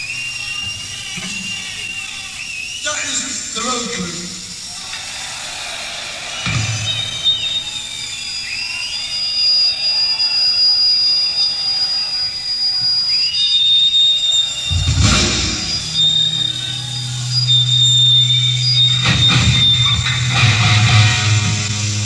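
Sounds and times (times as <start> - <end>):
electric guitar feedback: 0.0 - 4.8, 5.9 - 22.0
audience cheering and whistling: 0.0 - 22.0
low thump from stage: 14.7 - 16.5.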